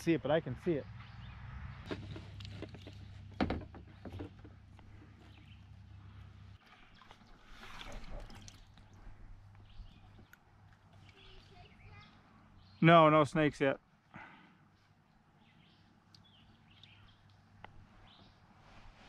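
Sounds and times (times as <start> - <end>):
paddle dipping into water: 6.6 - 9.2.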